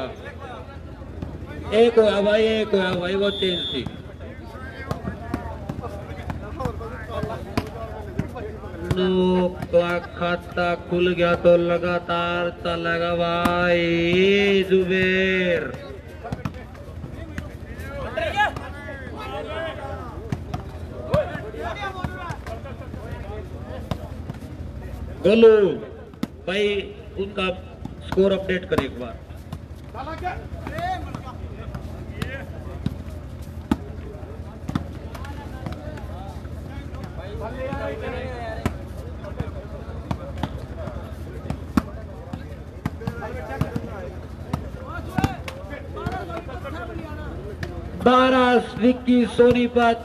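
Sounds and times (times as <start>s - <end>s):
crowd voices: 0.0s - 50.0s
volleyball hand slaps: 4.8s - 10.0s, 38.6s - 46.6s.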